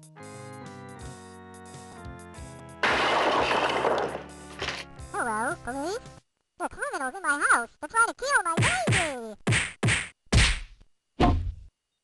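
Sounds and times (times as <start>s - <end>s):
cartoon whacking hits: 8.6s - 11.6s.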